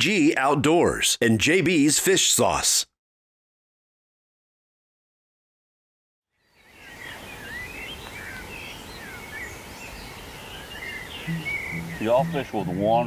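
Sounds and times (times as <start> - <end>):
small birds chirping: 6.3 - 13.0
background hiss: 6.8 - 13.0.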